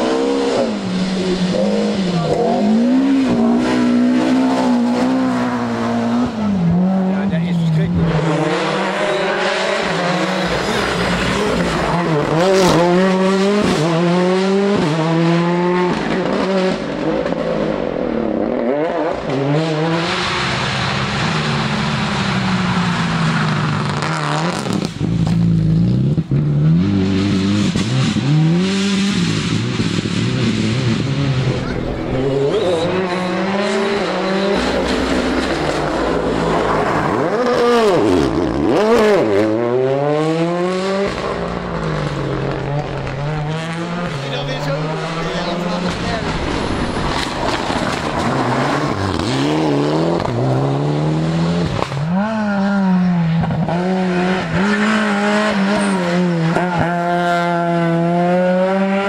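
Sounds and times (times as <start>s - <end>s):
rally car engines revving: 0.0s - 59.0s.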